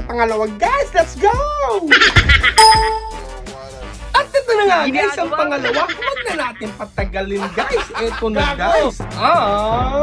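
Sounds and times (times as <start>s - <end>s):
bright ding: 2.6s - 3.4s.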